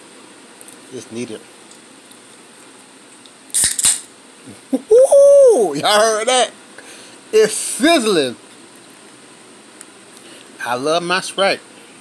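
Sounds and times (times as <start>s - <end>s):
soda bottle fizzing open: 3.5s - 4.1s.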